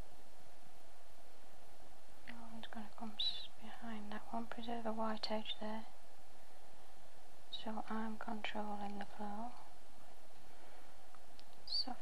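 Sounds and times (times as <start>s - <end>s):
steady background hiss: 0.0s - 12.0s
woman speaking softly: 2.3s - 6.0s, 7.5s - 9.7s, 11.7s - 12.0s.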